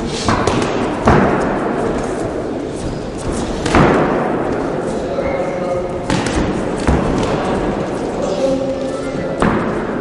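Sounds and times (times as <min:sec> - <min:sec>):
voices and shouts in a hall: 0:00.0 - 0:10.0.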